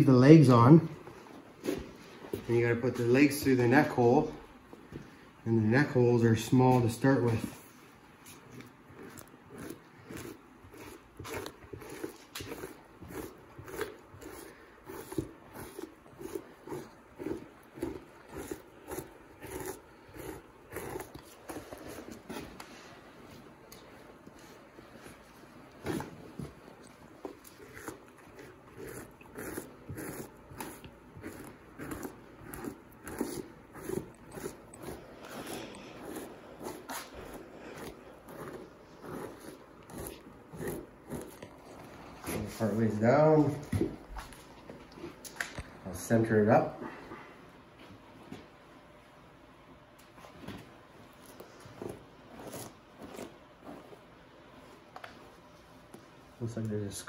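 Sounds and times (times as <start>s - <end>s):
knife scraping hide on wood: 8.3s - 22.9s, 27.2s - 44.4s.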